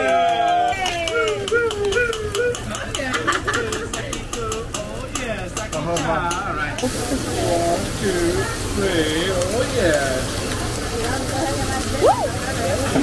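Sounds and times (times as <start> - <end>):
people calling and talking: 0.0 - 13.0.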